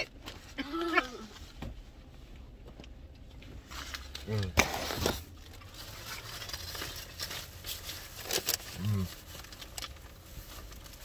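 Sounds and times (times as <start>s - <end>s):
low steady rumble: 0.0s - 11.0s
paper wrappers crinkling: 3.6s - 11.0s.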